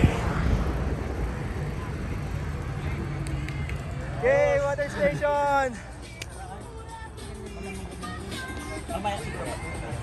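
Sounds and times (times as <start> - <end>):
wind buffeting microphone: 0.0 - 2.3
low rumble: 0.0 - 2.9.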